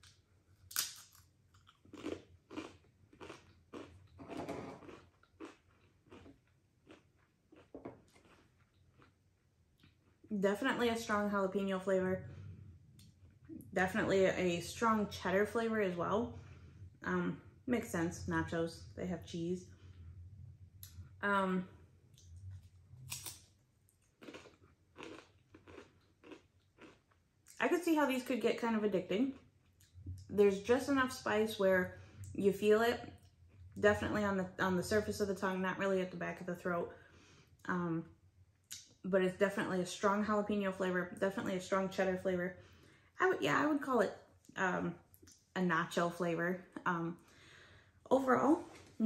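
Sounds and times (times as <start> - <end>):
chip bitten and chewed: 0.0 - 4.2, 4.8 - 9.2, 22.2 - 27.6.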